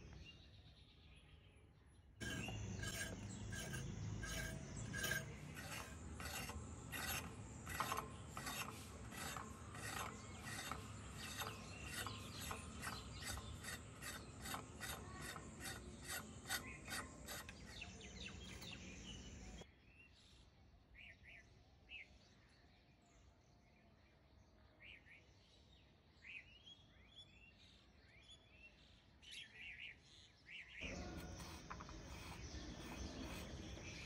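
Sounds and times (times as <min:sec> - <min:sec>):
vegetable skin scraped on blade: 0:02.2 - 0:18.8, 0:30.8 - 0:34.0.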